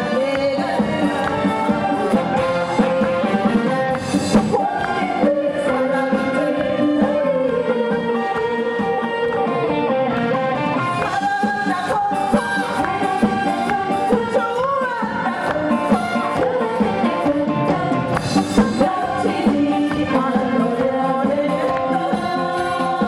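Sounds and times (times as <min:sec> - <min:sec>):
drums: 0:00.0 - 0:23.0
guitar: 0:00.0 - 0:23.0
woman singing with live band: 0:00.0 - 0:23.0.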